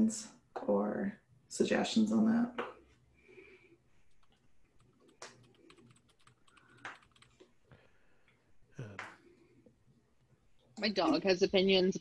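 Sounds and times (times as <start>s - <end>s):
typing on computer keyboard: 4.1s - 7.5s.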